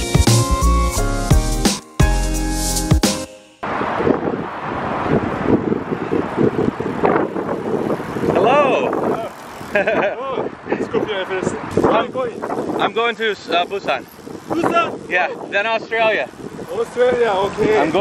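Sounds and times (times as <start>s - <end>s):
wind buffeting microphone: 3.6s - 18.0s
trike wheels rolling on pavement: 5.0s - 18.0s
people talking and laughing: 8.4s - 18.0s.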